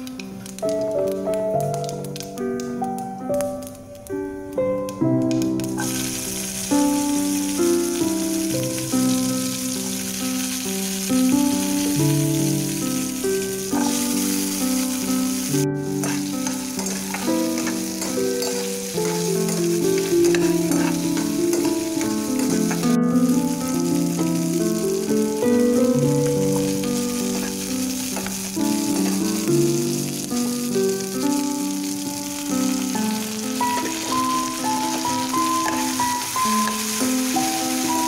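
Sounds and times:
background music melody: 0.0 - 38.0
food sizzling in hot oil: 5.2 - 38.0
ladle stirring in pan: 15.8 - 23.0, 26.6 - 29.5, 33.6 - 37.4.

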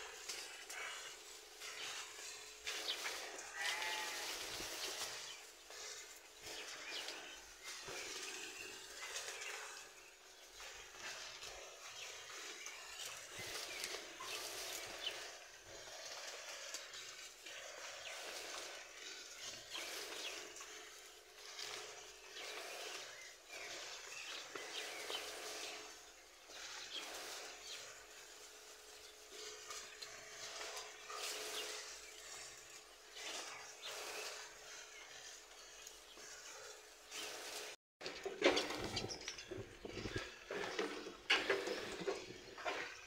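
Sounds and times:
animals rustling and scuffling: 0.0 - 43.0
small birds chirping: 0.0 - 43.0
sheep or goat bleat: 3.2 - 4.5.

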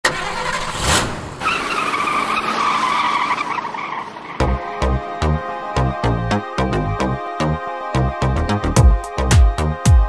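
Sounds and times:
car rush: 0.0 - 4.6
tire squeal: 0.1 - 4.6.

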